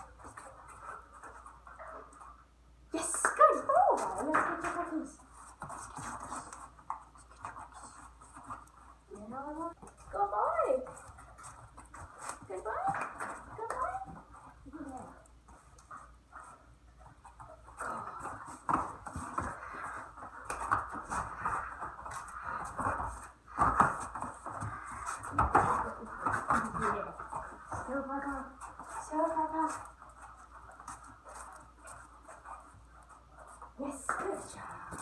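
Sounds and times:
dog paws pattering on foam mats: 0.0s - 35.0s.

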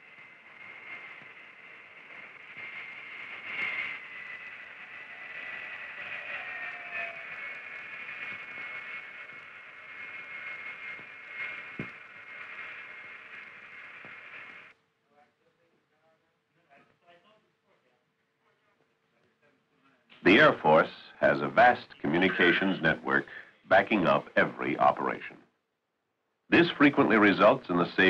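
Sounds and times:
hiss: 0.0s - 14.7s
jet engines whining: 0.0s - 14.7s, 20.2s - 25.2s, 26.5s - 28.0s.

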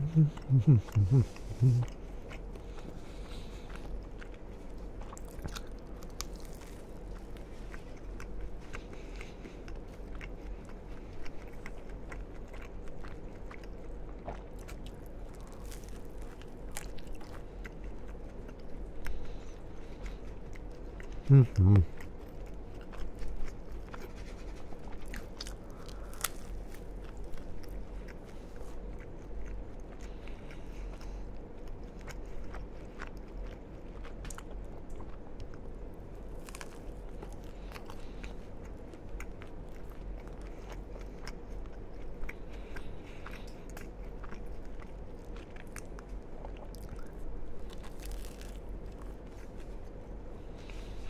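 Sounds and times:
crunchy sandwich chewing: 0.0s - 51.0s
steady low hum: 0.0s - 51.0s.

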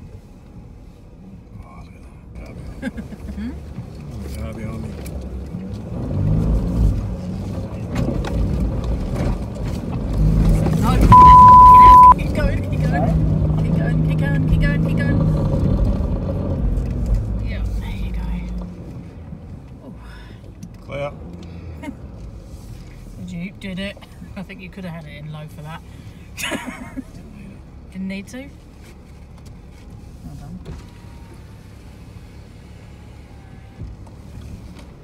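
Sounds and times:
car engine revving in sand: 2.4s - 19.1s
loud bleep tone: 11.1s - 12.2s.

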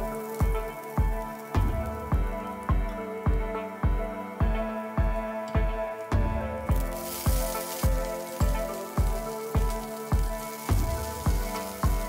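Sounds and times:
sizzling in hot oil: 0.0s - 4.0s, 6.7s - 12.0s
background music with steady beat: 0.0s - 12.0s.

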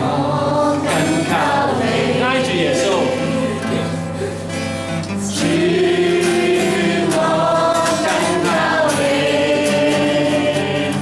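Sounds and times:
man singing worship song: 0.0s - 4.1s
strummed acoustic guitar: 0.0s - 11.0s.

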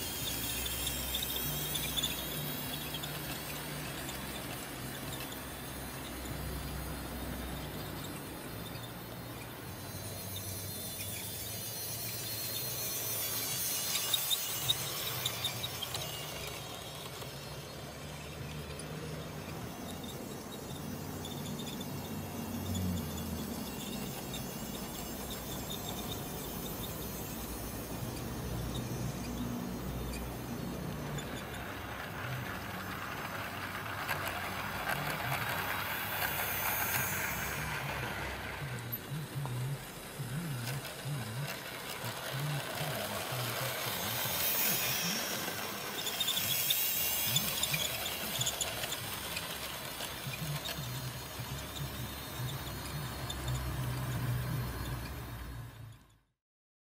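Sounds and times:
model train motor hum: 0.0s - 56.3s
wheels on rails: 0.0s - 56.3s.

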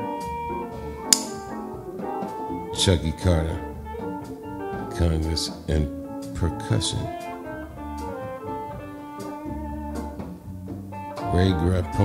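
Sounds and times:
guitar melody: 0.0s - 12.0s
jazz band music: 0.0s - 12.0s
short sharp hit: 1.1s - 1.8s.

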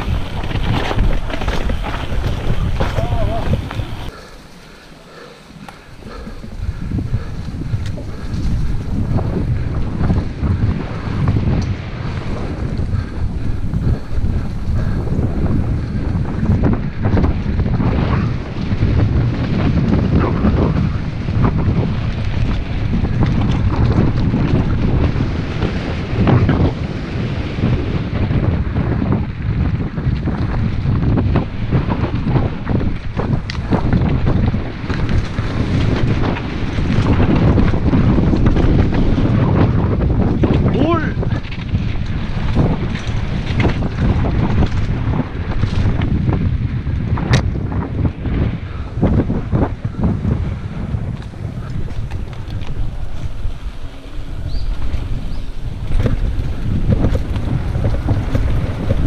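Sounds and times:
bike knocks and rattles: 0.0s - 26.9s, 27.6s - 59.0s
wind rushing over microphone: 0.0s - 59.0s.

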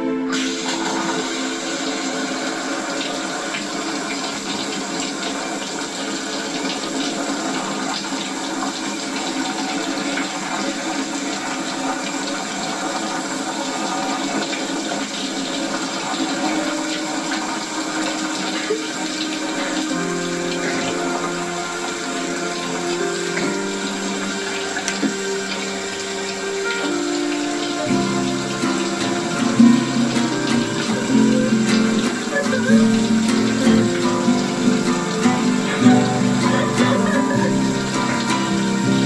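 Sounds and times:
shower water spraying: 0.0s - 39.0s
soft sustained music chords: 16.0s - 39.0s.

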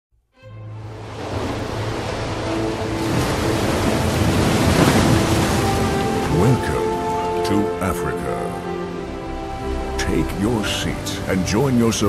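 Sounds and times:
low sustained music: 0.3s - 12.0s
ocean surf washing ashore: 0.8s - 12.0s.

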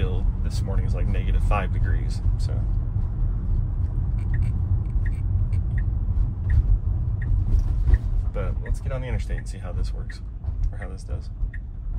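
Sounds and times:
road and tyre rumble: 0.0s - 11.9s.

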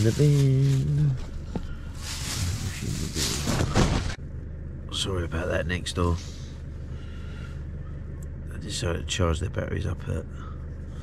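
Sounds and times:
tent fabric rustling: 0.0s - 4.2s
engine rumbling: 0.0s - 11.0s.

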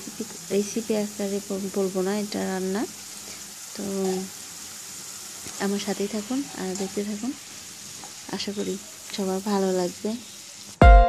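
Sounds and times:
dal sizzling in a pan: 0.0s - 10.8s.

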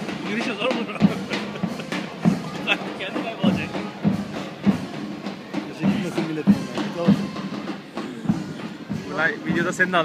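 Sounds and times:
marching drum beat: 0.0s - 10.0s.

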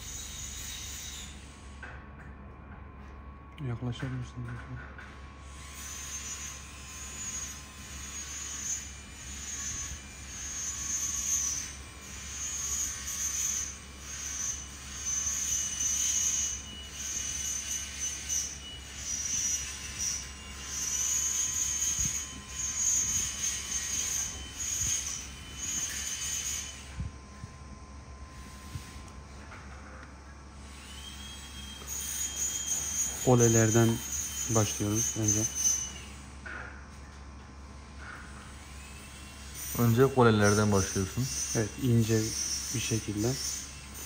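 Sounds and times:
high hissing squeal: 0.0s - 1.8s, 5.4s - 36.4s, 38.0s - 44.0s
steady low hum: 0.0s - 44.0s.

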